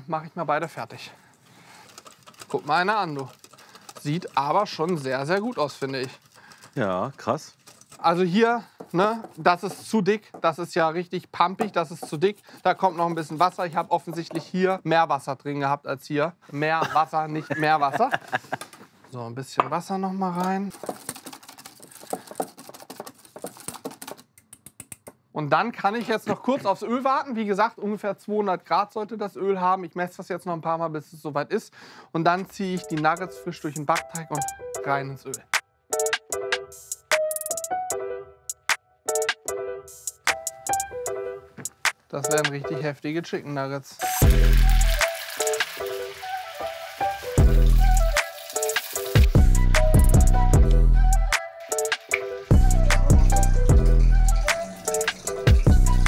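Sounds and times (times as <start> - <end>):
whisk beating batter in metal bowl: 2.3 - 6.7, 46.8 - 49.2
background music: 32.5 - 43.2, 44.0 - 56.0
chicken deep-frying in oil: 44.0 - 49.4.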